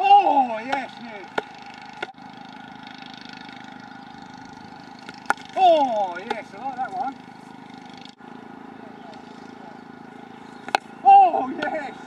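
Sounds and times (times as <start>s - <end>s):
mechanical drone: 0.0s - 12.0s.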